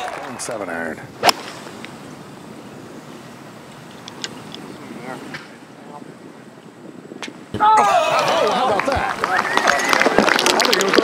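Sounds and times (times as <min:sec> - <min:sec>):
wind hiss: 0:00.1 - 0:11.0
golf club striking ball: 0:01.2 - 0:01.7.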